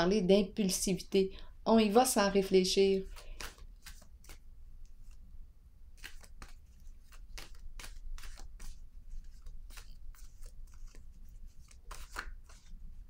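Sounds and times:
cards being shuffled: 2.9s - 5.2s, 5.9s - 13.0s.

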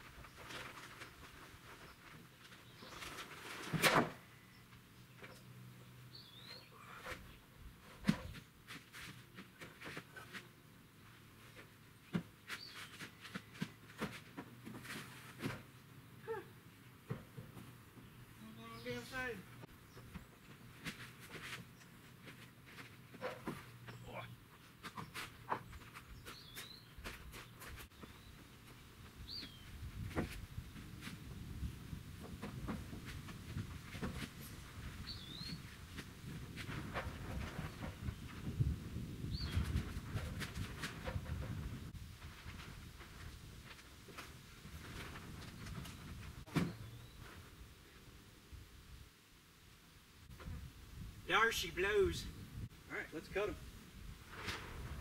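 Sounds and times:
bird chirps: 6.1s - 6.8s, 35.0s - 35.6s
gusting wind rumble: 29.7s - 43.6s.

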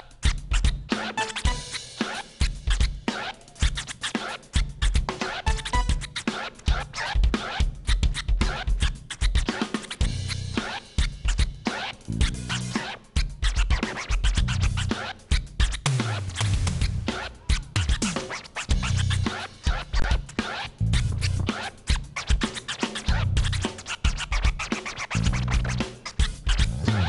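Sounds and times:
vinyl record scratching: 0.0s - 27.0s
live band bass-heavy groove: 0.3s - 27.0s.

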